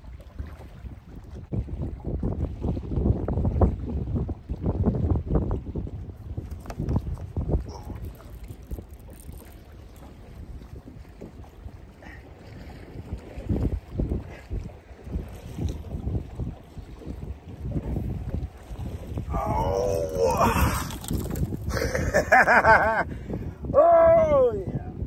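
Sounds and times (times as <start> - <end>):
waves slapping boat hull: 0.0 - 25.0
wind buffeting microphone: 0.0 - 25.0.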